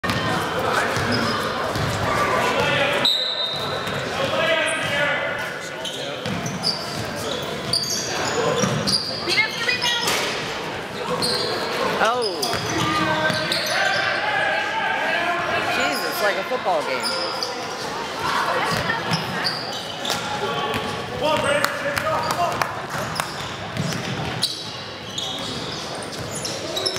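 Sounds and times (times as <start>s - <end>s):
voices echoing in hall: 0.0s - 26.9s.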